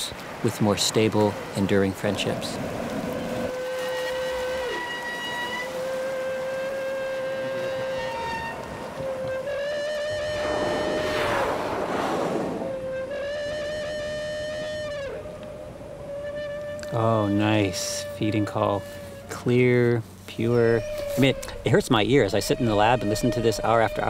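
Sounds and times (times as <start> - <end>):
humpback whale calls underwater: 2.8 - 19.4
underwater rushing noise: 9.9 - 13.6.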